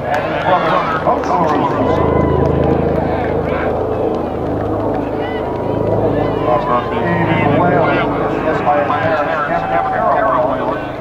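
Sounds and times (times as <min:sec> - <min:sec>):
low hum: 0:00.0 - 0:11.0
people talking outdoors: 0:00.0 - 0:11.0.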